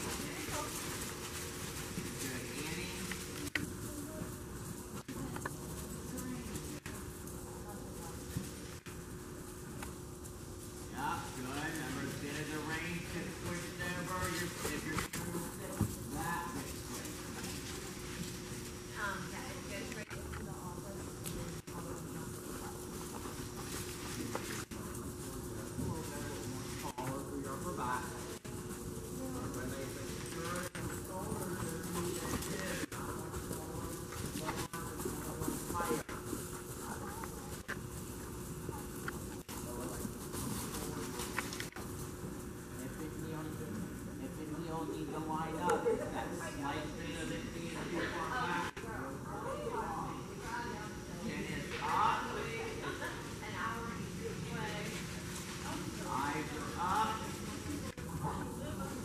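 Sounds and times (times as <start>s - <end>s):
faint voices: 0.0s - 59.0s
steady low hum: 0.0s - 59.0s.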